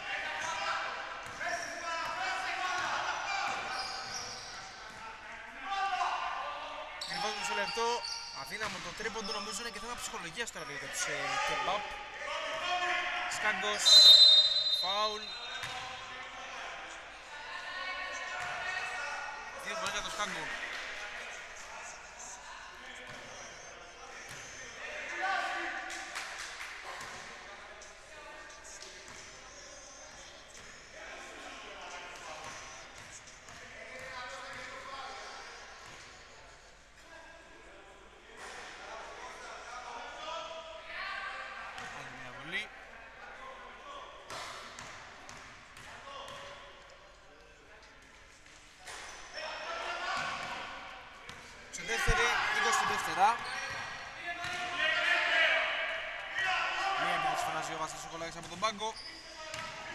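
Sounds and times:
voices: 0.0s - 37.8s, 48.8s - 59.9s
shoe squeaks: 3.3s - 4.8s, 7.0s - 11.0s, 13.7s - 15.8s, 52.0s - 54.2s, 58.4s - 59.9s.

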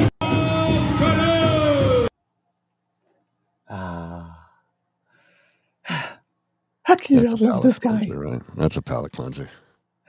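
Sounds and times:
man sighing: 3.7s - 6.2s
man speaking: 6.9s - 9.6s.

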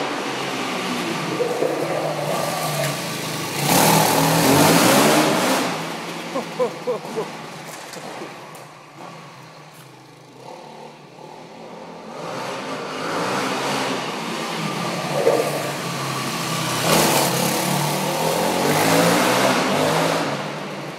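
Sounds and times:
dirt bike engine revving: 0.0s - 7.4s, 10.4s - 20.6s.

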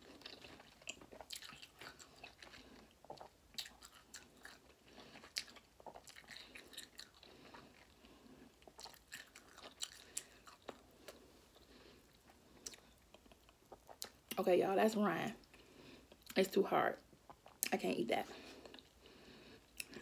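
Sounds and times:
person chewing: 0.0s - 14.4s, 17.2s - 17.7s, 18.4s - 20.0s.

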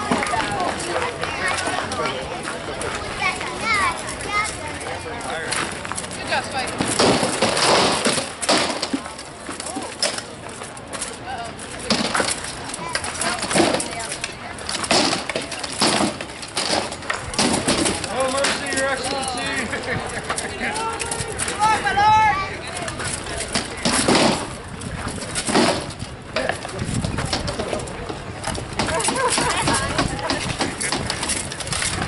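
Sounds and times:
rattan swords striking shields: 6.0s - 19.2s, 22.8s - 32.0s.

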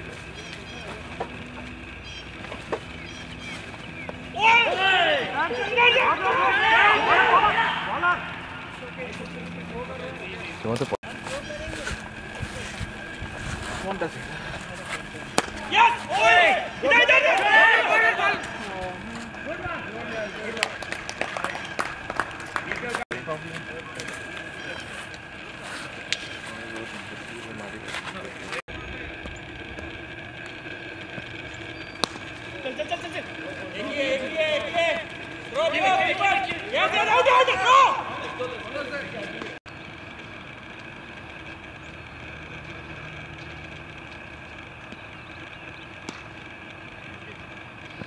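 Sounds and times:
open-air ambience: 0.0s - 48.0s
players calling: 0.0s - 48.0s
overlapping shouts: 4.2s - 9.6s, 15.4s - 23.0s, 32.7s - 39.5s
cricket bat striking ball: 15.3s - 15.6s, 32.0s - 32.2s.

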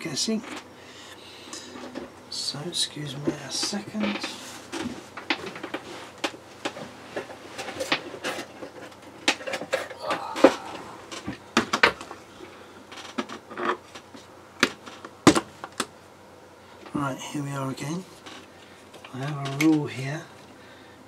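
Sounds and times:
objects clattering when handled: 3.2s - 12.2s.

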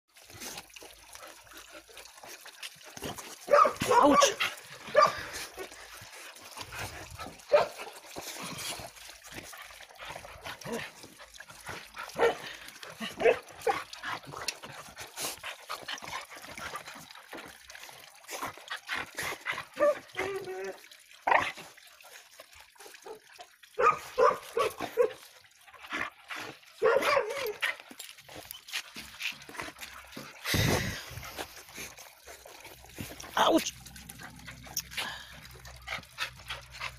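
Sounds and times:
dog barking: 3.5s - 5.2s, 7.5s - 7.8s, 12.2s - 12.4s, 13.2s - 13.8s, 23.8s - 25.2s, 26.8s - 27.6s.

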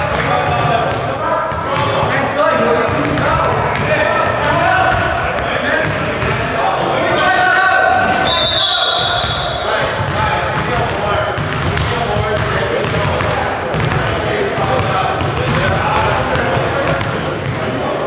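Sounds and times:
players calling out in gym: 0.0s - 11.4s
basketball bouncing on wooden floor: 2.8s - 6.4s, 10.0s - 17.6s.

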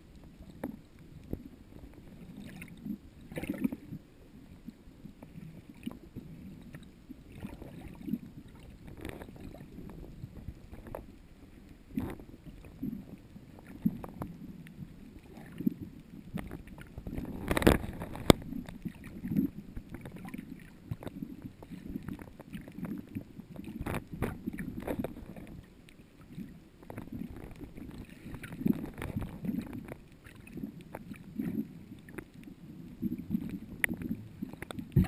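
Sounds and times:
underwater churning water: 0.0s - 35.0s.

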